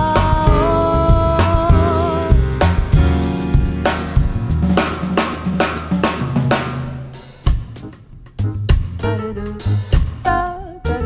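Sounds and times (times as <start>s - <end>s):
double bass notes: 0.0s - 11.0s
drum kit playing jazz: 0.0s - 11.0s.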